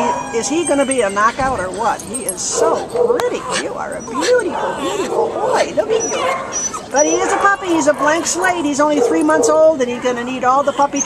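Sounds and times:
puppy whimpering and yipping: 0.0 - 11.0.

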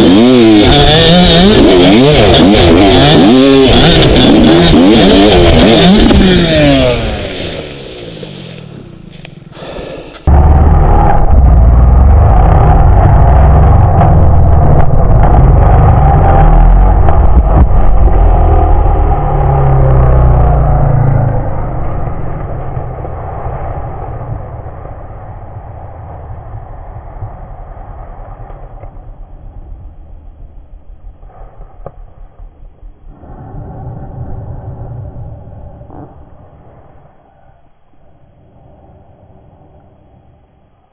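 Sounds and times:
dirt bike engine: 0.0 - 31.6.

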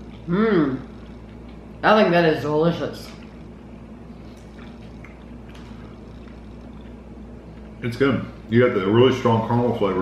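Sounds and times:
wet chewing: 0.0 - 1.8, 2.9 - 7.9
steady low hum: 0.0 - 10.0.

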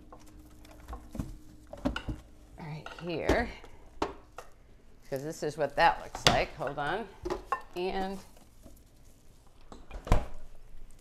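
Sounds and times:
faint kitchen handling noise: 0.8 - 8.8.

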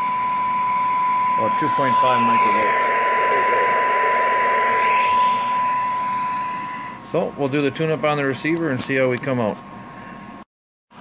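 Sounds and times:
steady test tone: 0.0 - 7.4.

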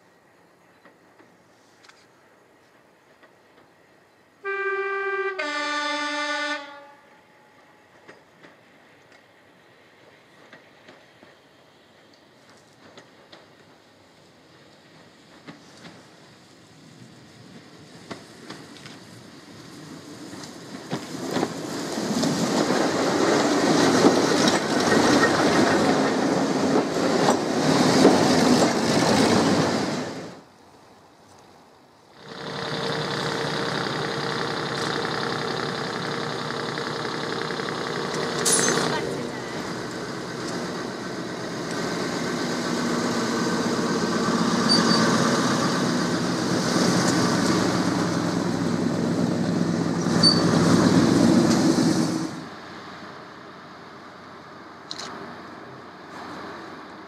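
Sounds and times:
train wheels clattering over rail joints: 10.0 - 16.4, 17.6 - 30.3, 32.2 - 52.3
diesel engines droning: 32.1 - 57.0.

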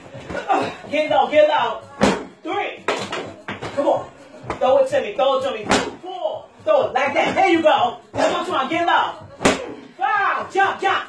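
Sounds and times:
medicine ball slamming on concrete: 2.0 - 3.8, 5.5 - 6.0.

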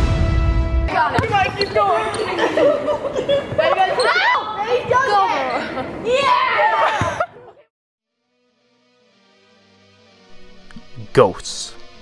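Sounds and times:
excited voices echoing: 0.9 - 7.3
basketball bouncing on hardwood: 1.2 - 1.7.

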